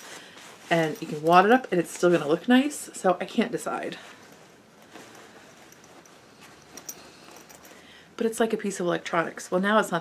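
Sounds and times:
fabric bag rustling: 0:00.0 - 0:02.7, 0:03.7 - 0:07.9.

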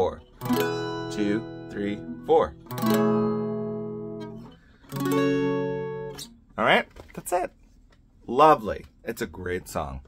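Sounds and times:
acoustic guitar chords ringing: 0:00.1 - 0:06.6.

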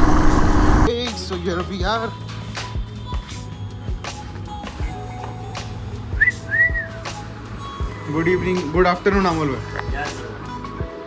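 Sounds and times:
background music: 0:00.8 - 0:11.0
two-note whistle: 0:06.2 - 0:07.2.

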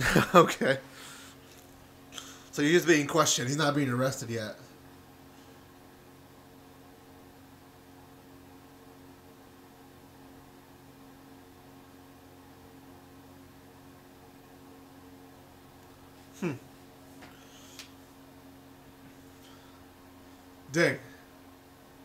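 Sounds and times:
faint hum and hiss: 0:00.0 - 0:22.0.

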